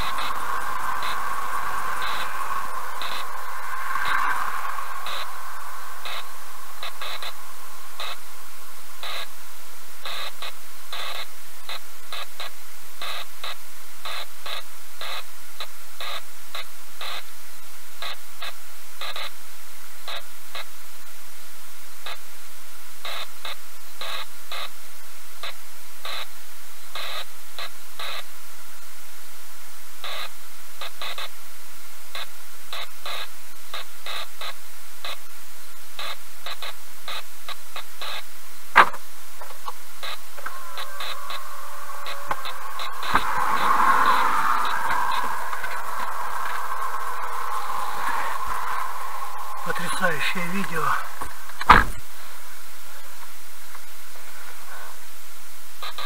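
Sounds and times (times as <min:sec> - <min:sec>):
faint steady whine: 0:00.0 - 0:56.0
loud steady hiss: 0:00.0 - 0:56.0.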